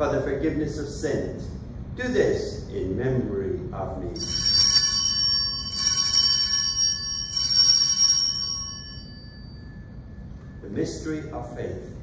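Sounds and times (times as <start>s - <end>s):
altar bells ringing: 4.2s - 10.0s.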